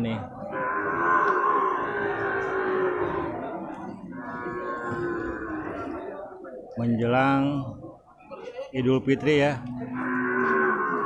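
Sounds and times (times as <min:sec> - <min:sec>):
water buffalo mooing: 0:00.4 - 0:06.1, 0:09.8 - 0:11.0.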